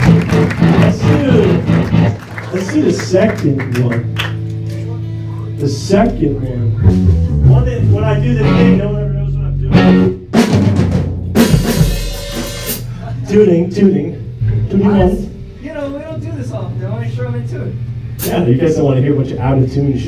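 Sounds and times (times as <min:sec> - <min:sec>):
bass guitar low notes: 0:00.0 - 0:20.0
electric guitar notes: 0:00.0 - 0:20.0
drum hits: 0:09.7 - 0:12.9
loud cymbal crash: 0:11.4 - 0:12.9, 0:18.1 - 0:18.6.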